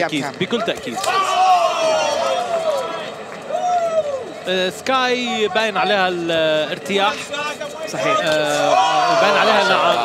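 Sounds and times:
faint arena crowd noise: 0.0 - 10.0.

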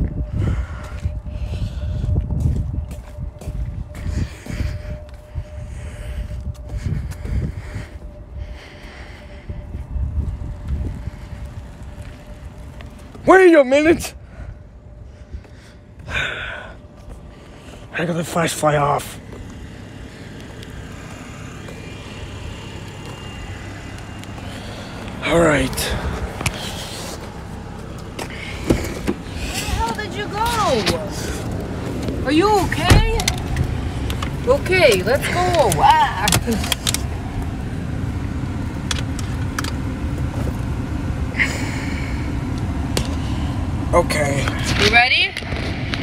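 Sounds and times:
low outdoor rumble: 0.0 - 46.0.

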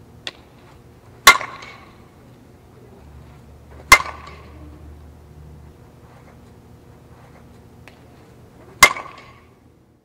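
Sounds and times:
bat cracking against softball: 0.2 - 2.1, 3.2 - 4.6, 6.0 - 9.6.

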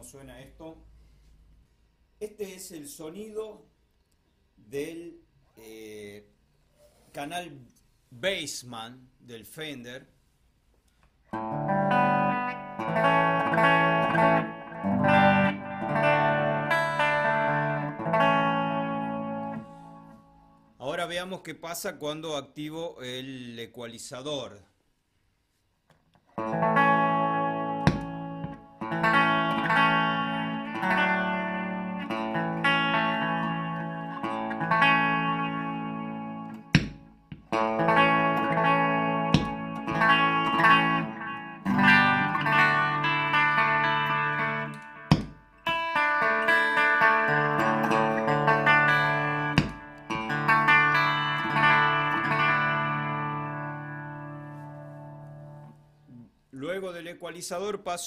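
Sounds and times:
electric guitar ringing chords: 11.3 - 20.7, 26.4 - 55.9.

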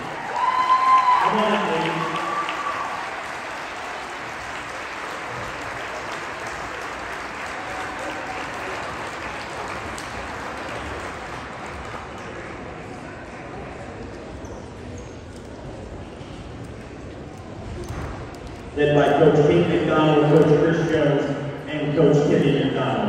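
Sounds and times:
cheering shouts: 0.0 - 3.8
audience applauding: 0.0 - 12.8.

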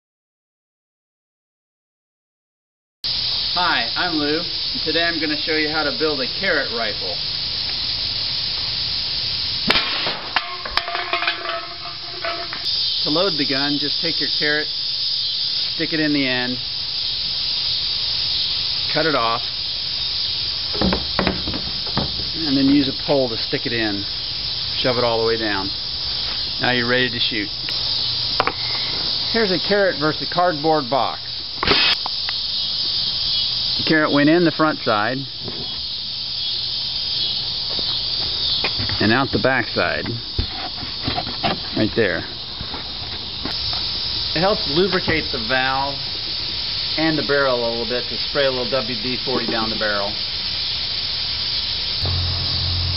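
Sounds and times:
insects chirring: 3.0 - 52.9
steady hiss: 3.0 - 52.9
air rifle pop: 9.7 - 10.4.

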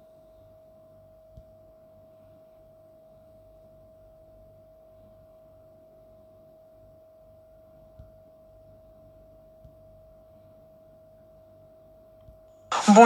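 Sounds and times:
faint steady hum: 0.0 - 13.0
low background noise: 0.0 - 13.0.

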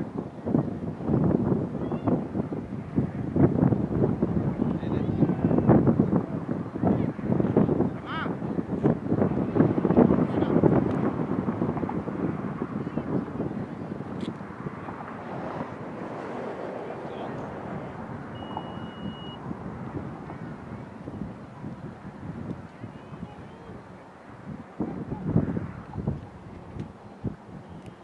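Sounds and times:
wind buffeting microphone: 0.0 - 28.0
faint distant voices calling: 1.7 - 2.2, 12.5 - 28.0.

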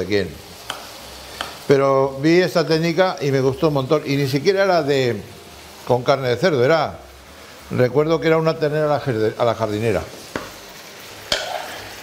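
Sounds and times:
meat sizzling in a pan: 0.0 - 12.0
garlic scraped into pan: 11.3 - 12.0.

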